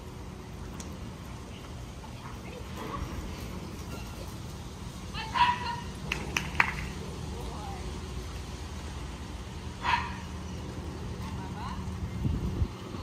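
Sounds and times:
dog barking: 5.4s - 5.8s, 9.8s - 10.3s.

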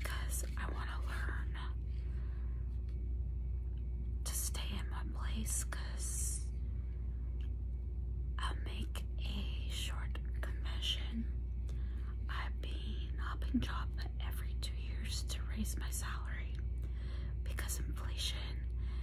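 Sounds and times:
woman whispering: 0.0s - 1.9s, 4.2s - 6.5s, 8.4s - 11.4s, 12.2s - 16.7s, 17.4s - 18.8s
low hum: 0.0s - 19.0s.

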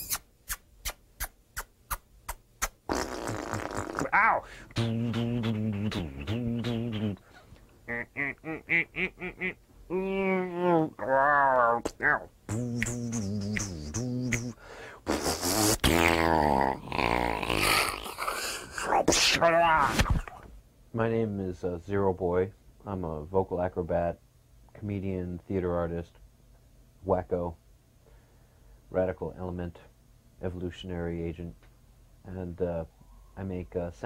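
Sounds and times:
pitched vocal buzzing tone: 0.0s - 0.6s, 2.6s - 19.8s
sharp mouth click: 0.0s - 3.4s, 11.9s - 15.6s
rasping hissing mouth noise: 0.0s - 9.5s, 11.7s - 19.2s
mouth clicks: 0.0s - 9.6s, 11.6s - 18.5s
rushing vocal hiss over drone: 12.0s - 19.2s.

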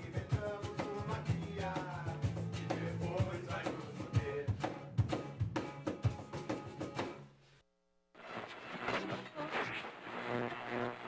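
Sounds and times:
acoustic guitar: 0.0s - 7.3s
electric bass: 1.2s - 3.4s.

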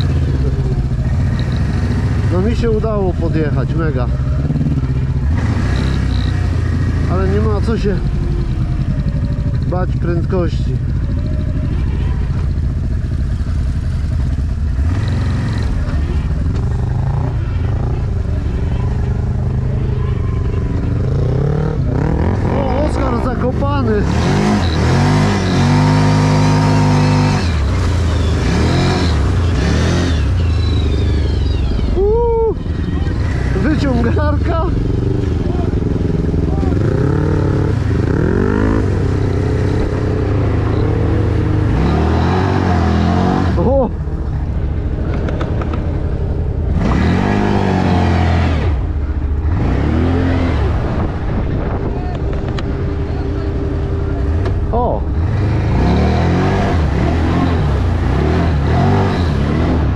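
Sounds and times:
atv engine revving: 0.0s - 59.9s.

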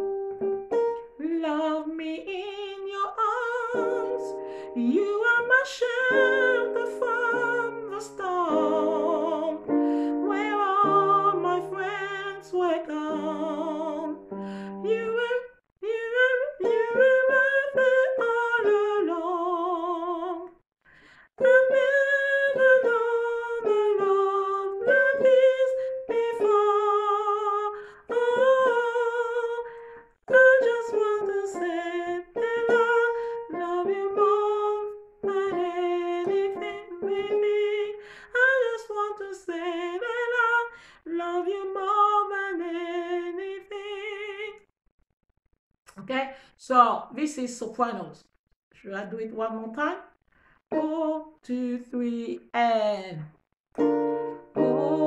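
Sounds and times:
woman singing unaccompanied: 1.2s - 20.6s, 21.4s - 44.7s, 50.7s - 52.7s, 54.4s - 55.0s.

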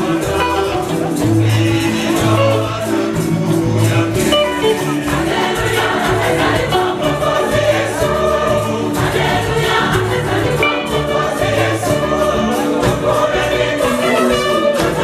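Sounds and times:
choir singing gospel: 0.0s - 15.0s
live band playing: 0.0s - 15.0s.

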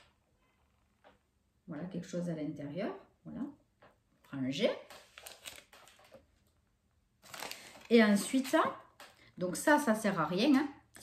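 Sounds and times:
paper crinkling: 4.9s - 6.6s, 7.2s - 9.2s.

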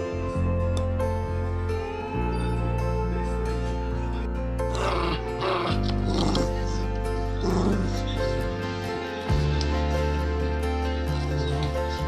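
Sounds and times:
background music: 0.0s - 12.0s
dog vocalizing: 4.7s - 8.6s.

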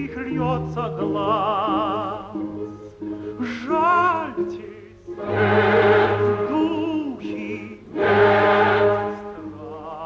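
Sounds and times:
tenor singing with vibrato: 0.0s - 10.0s
chorus with orchestra: 3.4s - 10.0s.

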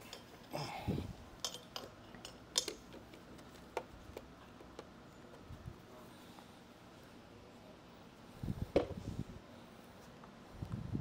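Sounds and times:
light clicks and clinks: 1.4s - 3.0s.

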